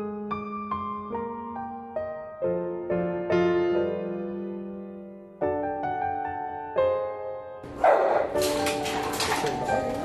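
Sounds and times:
soft piano music: 0.0s - 10.0s
dog barking: 7.7s - 8.5s.

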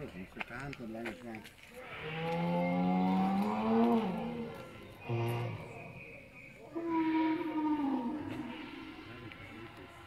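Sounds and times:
long low dinosaur call: 1.9s - 5.8s, 6.7s - 9.1s.

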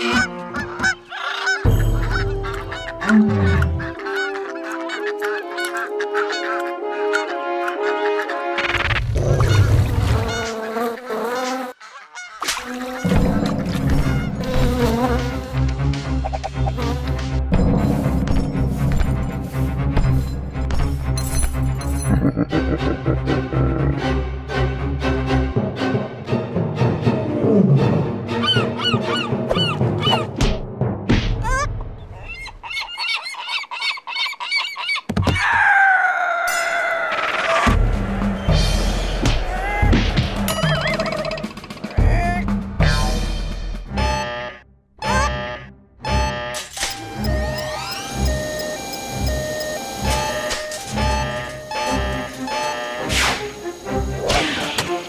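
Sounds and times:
cartoon seagulls squawking: 0.0s - 8.8s, 11.8s - 13.2s, 28.4s - 30.3s, 31.4s - 37.7s
cartoon fly buzzing: 8.6s - 11.8s, 12.4s - 17.3s, 43.9s - 55.0s.

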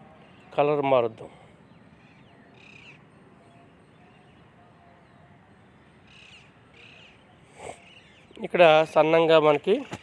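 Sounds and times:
faint bird calls: 1.2s - 8.5s.

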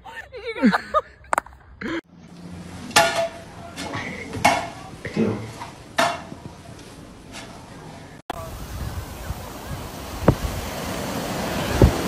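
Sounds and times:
sharp metal clanks: 2.8s - 7.6s.

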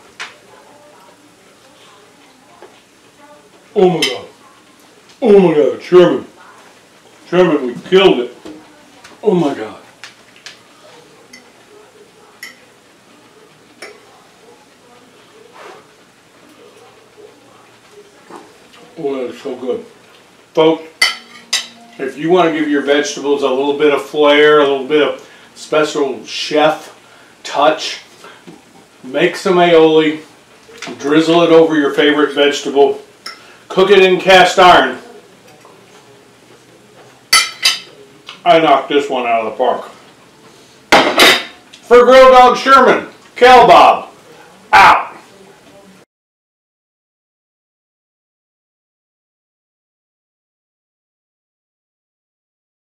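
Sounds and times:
soft murmur: 0.0s - 5.2s, 6.3s - 20.5s, 34.8s - 38.5s
fork clinking on plate: 21.0s - 21.9s, 37.4s - 37.9s.

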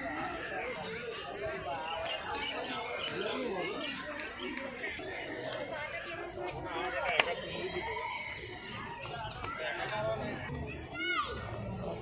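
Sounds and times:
overlapping conversational chatter: 0.0s - 12.0s.

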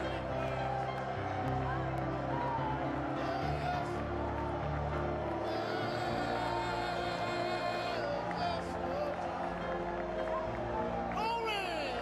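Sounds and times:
congregation singing: 0.0s - 11.8s.

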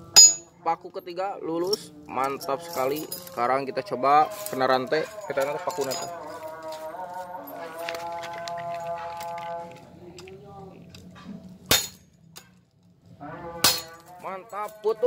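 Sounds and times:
blade striking steel chain: 0.2s - 0.5s, 11.7s - 12.5s, 13.6s - 14.9s.

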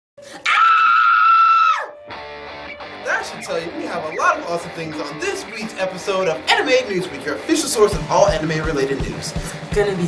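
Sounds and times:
woman screaming: 0.4s - 2.0s.

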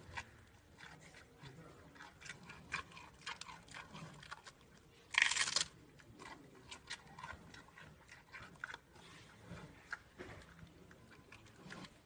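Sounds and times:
panda chewing bamboo: 0.0s - 12.0s.

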